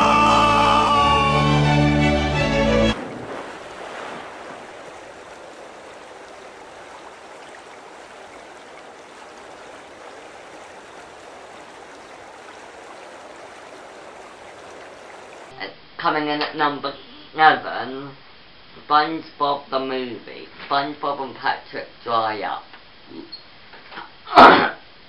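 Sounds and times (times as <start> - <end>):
rushing sea water: 0.0 - 15.6.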